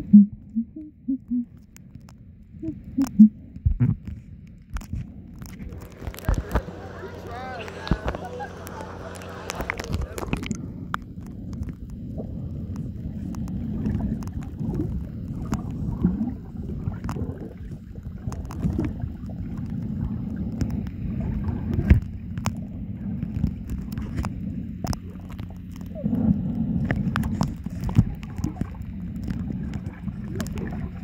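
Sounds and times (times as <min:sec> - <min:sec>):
muffled underwater rumble: 0:00.0 - 0:31.0
underwater clicks and crackles: 0:00.0 - 0:31.0.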